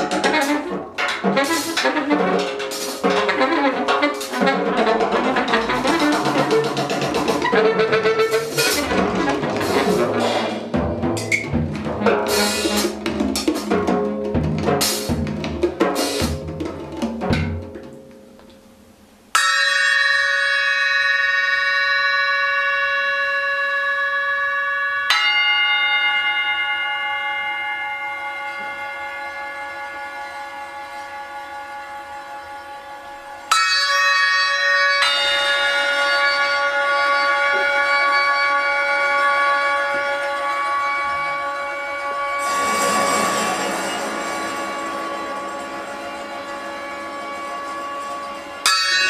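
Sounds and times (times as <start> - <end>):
drum strikes: 0.0 - 18.4, 42.3 - 49.0
bell-like ringing tones: 19.4 - 49.0.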